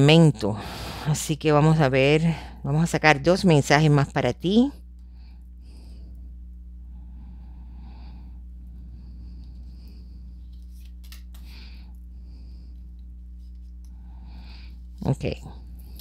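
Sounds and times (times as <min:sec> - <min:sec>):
steady low hum: 0:00.0 - 0:16.0
cards being shuffled: 0:10.4 - 0:11.6.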